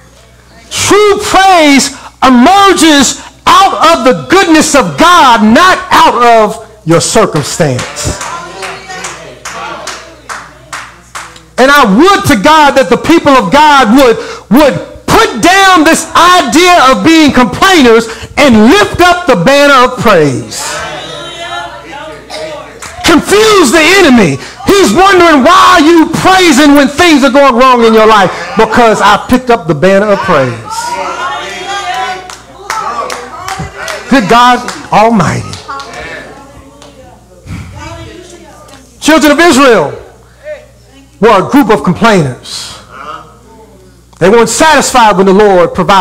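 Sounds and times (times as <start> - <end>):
congregation calling out: 0.0 - 46.0
rhythmic hand clapping: 7.4 - 11.6, 22.7 - 23.0, 31.9 - 36.0
faint voices: 30.0 - 39.0.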